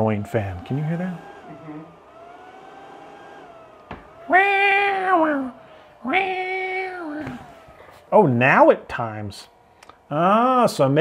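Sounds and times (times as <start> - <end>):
cooling fan whine: 0.0 - 11.0.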